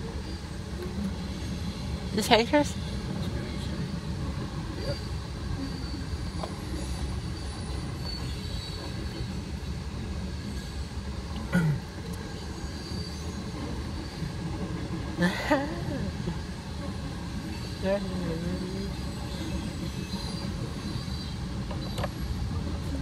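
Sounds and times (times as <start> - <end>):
train wheels rumbling on rail: 0.0 - 23.0
high wheel squeal: 4.8 - 9.5.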